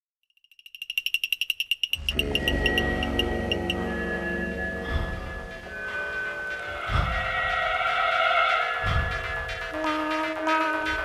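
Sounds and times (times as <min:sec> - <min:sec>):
rapid high electronic beeping: 0:00.5 - 0:03.8.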